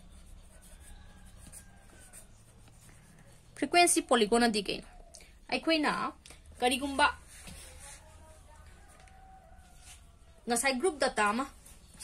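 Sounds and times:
marker scratching on paper: 0.0s - 4.5s, 6.6s - 8.4s.

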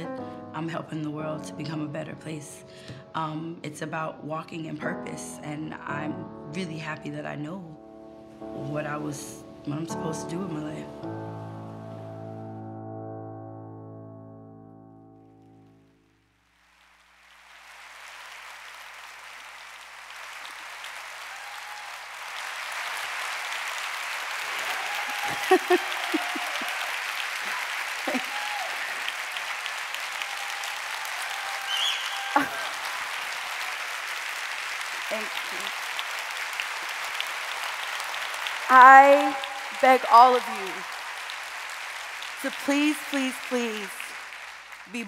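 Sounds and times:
audience applause: 16.7s - 45.0s.

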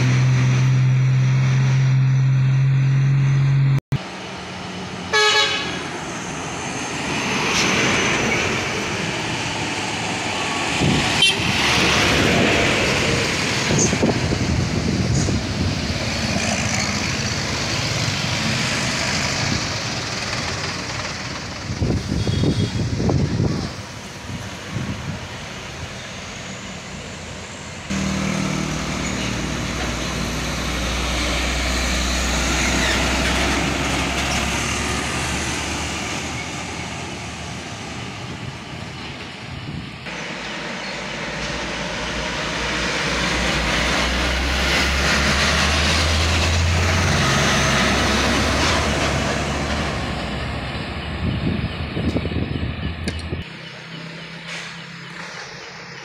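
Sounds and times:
heavy trucks driving past: 0.0s - 56.0s.

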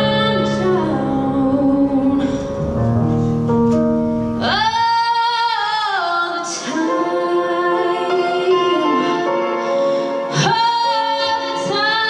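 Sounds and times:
woman singing: 0.0s - 2.6s, 4.4s - 12.0s
electric keyboard chords: 0.0s - 5.8s.

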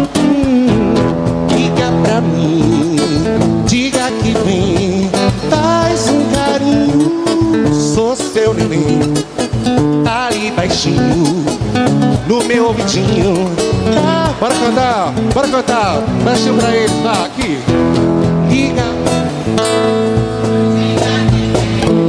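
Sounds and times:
man singing into a microphone: 0.0s - 22.0s
strummed acoustic guitar: 0.0s - 22.0s.

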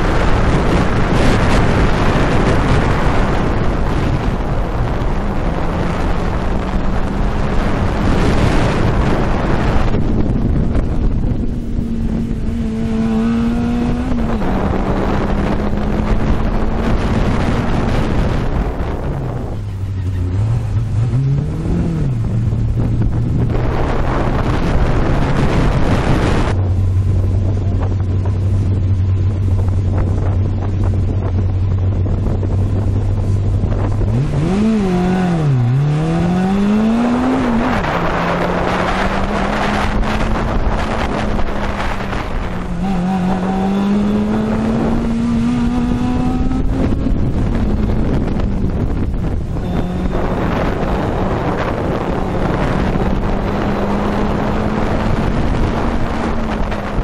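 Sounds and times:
car engine revving: 0.0s - 57.0s
wind on microphone: 0.0s - 57.0s.

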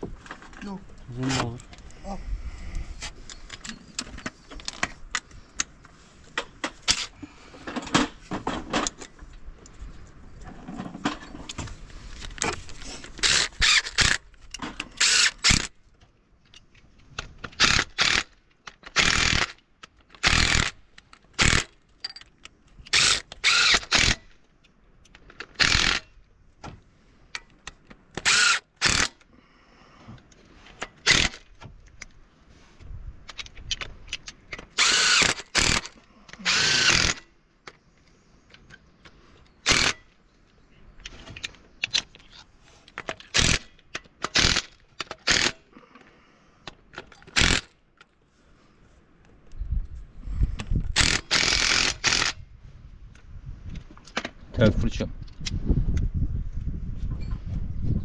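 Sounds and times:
cordless power driver bursts: 22.9s - 24.2s, 25.6s - 26.0s, 28.2s - 29.2s, 31.0s - 31.4s, 34.8s - 37.3s, 39.6s - 40.0s, 44.3s - 45.6s, 47.3s - 47.7s, 50.9s - 52.4s.

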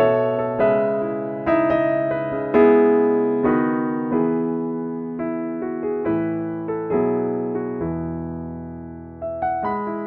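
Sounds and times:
slow gentle piano: 0.0s - 10.0s.

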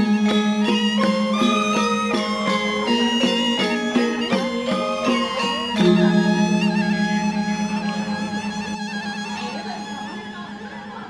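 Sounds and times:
gamelan metallophones ringing: 0.0s - 11.0s.

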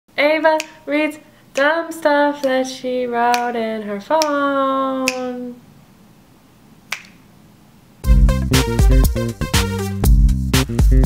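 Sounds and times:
finger snap: 0.6s - 0.9s, 1.6s - 1.8s, 3.3s - 4.4s, 5.1s - 5.4s, 6.9s - 7.3s.

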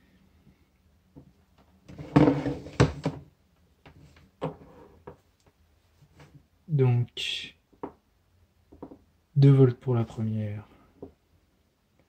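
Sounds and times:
plastic device scraping on table: 1.9s - 3.2s.

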